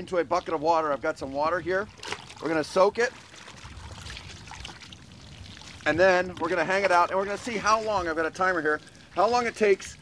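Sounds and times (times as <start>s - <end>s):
water moving in plastic bucket: 1.8s - 10.0s.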